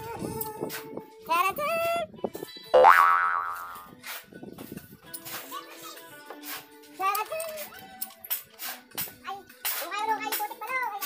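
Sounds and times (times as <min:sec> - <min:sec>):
cartoon boing: 0:02.8 - 0:03.9.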